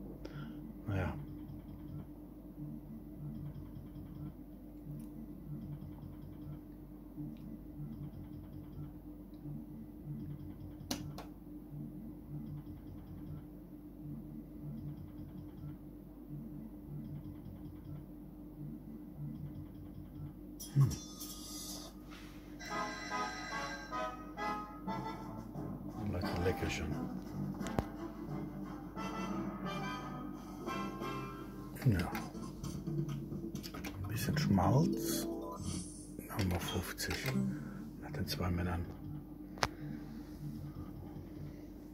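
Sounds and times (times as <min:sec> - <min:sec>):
slot machine hum: 0:20.6 - 0:38.6
electronic melody and jingles: 0:22.6 - 0:24.2.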